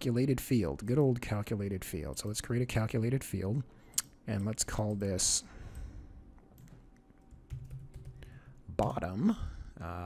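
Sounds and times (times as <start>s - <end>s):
faint keyboard typing: 4.0s - 9.0s.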